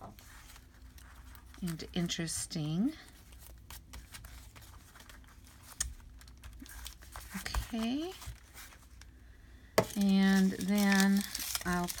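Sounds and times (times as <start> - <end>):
foil paper crinkling: 0.1 - 9.2, 9.8 - 12.0.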